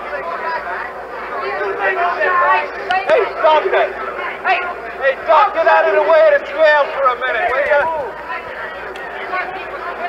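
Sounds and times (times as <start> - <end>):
men talking over one another: 0.0 - 10.0
steady hum: 0.0 - 10.0.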